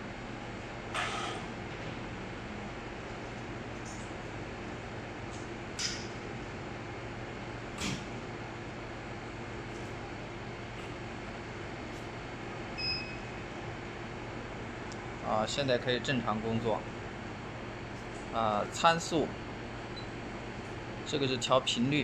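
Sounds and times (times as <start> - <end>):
laser welder and chiller hum: 0.0 - 22.0.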